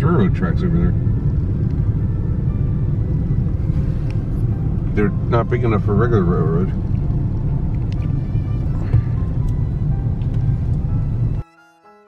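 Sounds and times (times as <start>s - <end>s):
car engine and road rumble: 0.0s - 11.4s.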